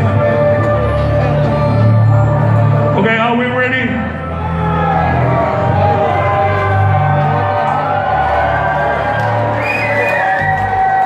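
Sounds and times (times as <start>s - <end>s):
crowd cheering and whooping: 4.3s - 11.0s.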